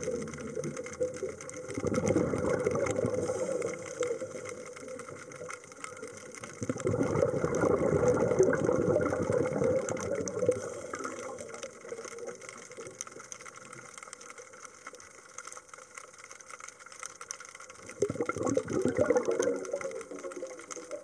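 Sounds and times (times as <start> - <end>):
underwater water gurgling: 0.0 - 21.0.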